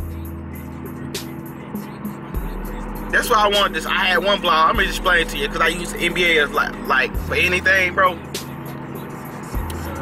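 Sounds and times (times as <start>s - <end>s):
background music: 0.0s - 10.0s
car engine and road noise: 0.0s - 10.0s.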